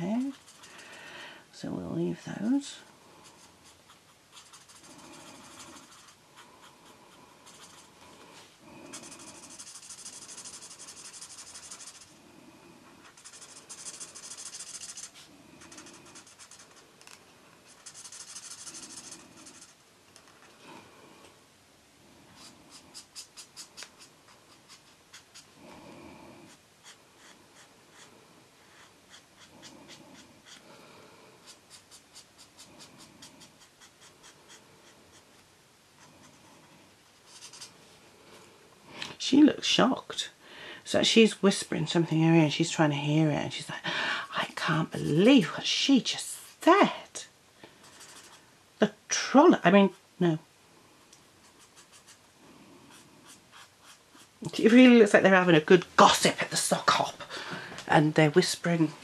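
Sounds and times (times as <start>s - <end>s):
marker scratching on paper: 0.2s - 0.7s, 3.3s - 6.7s, 7.4s - 7.9s, 8.9s - 12.1s, 13.0s - 16.8s, 17.7s - 19.8s, 22.4s - 25.5s, 26.5s - 30.6s, 31.4s - 35.4s, 37.2s - 37.7s, 47.8s - 48.4s, 51.4s - 52.3s, 52.9s - 54.4s.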